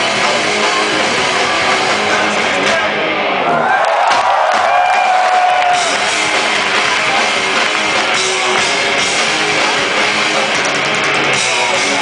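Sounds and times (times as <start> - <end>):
live punk rock band: 0.0 - 12.0.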